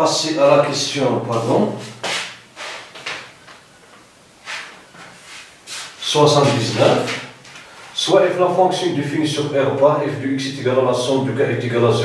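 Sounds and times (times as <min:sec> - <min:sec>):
marker swiping on a whiteboard: 0:01.8 - 0:03.2.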